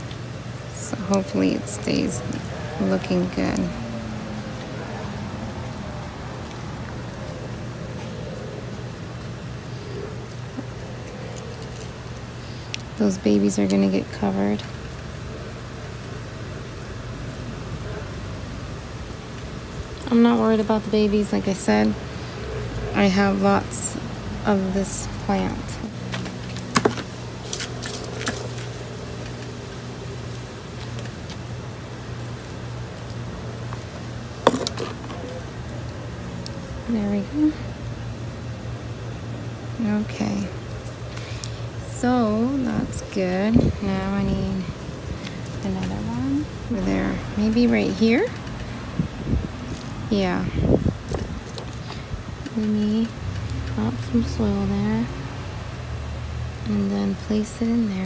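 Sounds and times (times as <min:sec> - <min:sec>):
low mechanical hum: 0:00.0 - 0:58.0.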